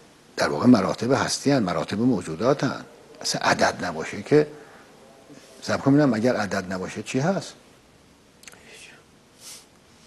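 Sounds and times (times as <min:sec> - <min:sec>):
soft breaths: 0:04.5 - 0:05.7, 0:08.4 - 0:10.0
mouth click: 0:08.4 - 0:08.7.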